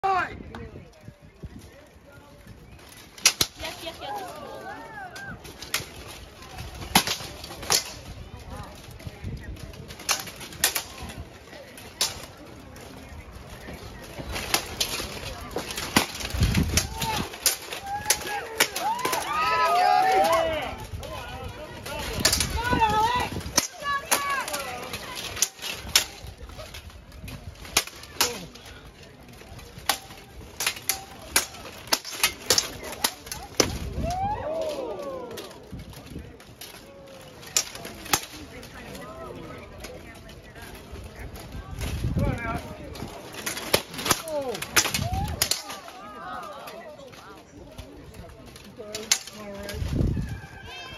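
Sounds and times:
people shouting: 16.8 - 25.0, 33.3 - 35.6.

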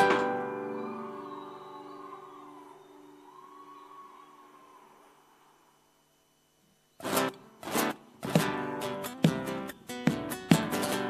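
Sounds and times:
acoustic guitar chord ringing: 0.0 - 4.2, 7.0 - 11.0.

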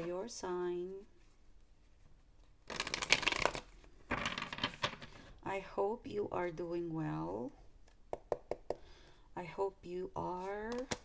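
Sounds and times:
cards shuffled by hand: 2.4 - 5.2.

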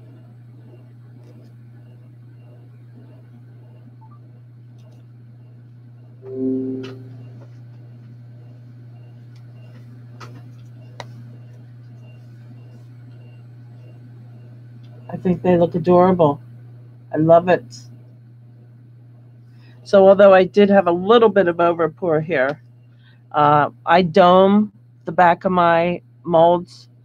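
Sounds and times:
low steady hum: 0.0 - 27.0
brief pitched sound: 6.2 - 7.2.

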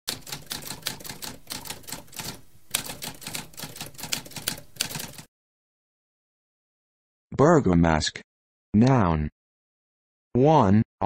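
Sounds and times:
typewriter keys clacking: 0.1 - 5.3.

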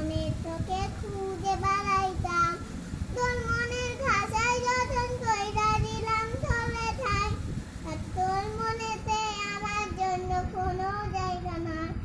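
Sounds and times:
child singing unaccompanied: 0.0 - 12.0.

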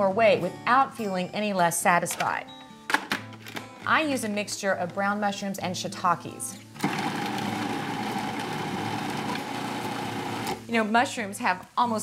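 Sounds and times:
food processor chopping mushrooms: 6.8 - 10.6.

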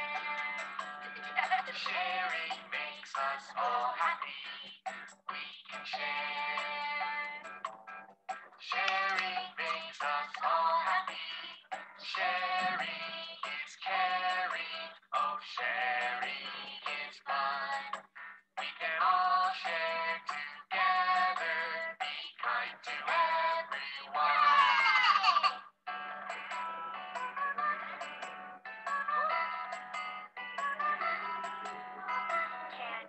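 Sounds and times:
children's song with music backing: 0.0 - 33.0.

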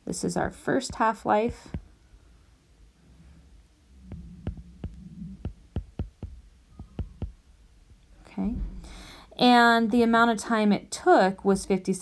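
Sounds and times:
faint low hum: 0.0 - 12.0
stylus tapping on glass screen: 4.1 - 7.4.

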